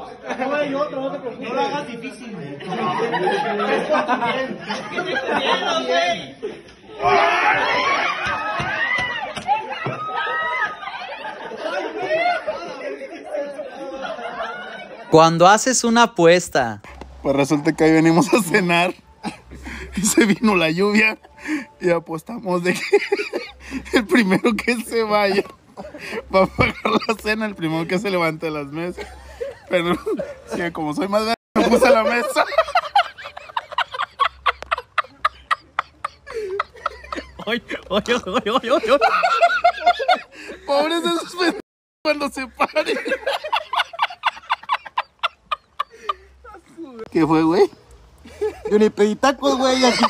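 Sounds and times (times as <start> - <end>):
group of people talking: 0.0 - 50.0
man laughing hard: 31.6 - 40.6, 49.5 - 50.0.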